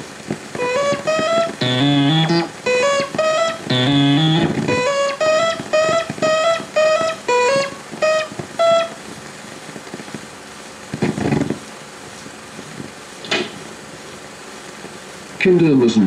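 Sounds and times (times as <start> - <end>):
low steady hiss: 0.0 - 16.0
plucked guitar melody: 0.6 - 9.2.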